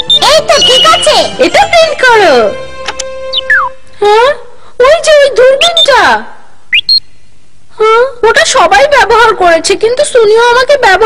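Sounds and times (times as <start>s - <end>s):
cartoon rising whistle tone: 3.3s - 3.7s
cartoon dialogue: 3.4s - 7.0s.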